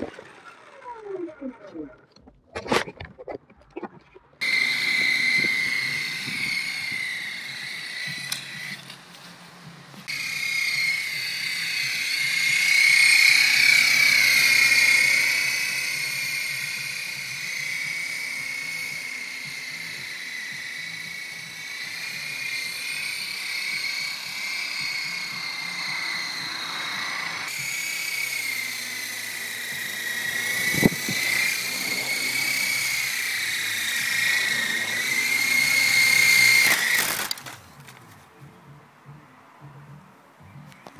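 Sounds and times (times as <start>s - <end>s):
toy helicopter rotors whining: 0.0s - 2.3s, 4.4s - 38.0s.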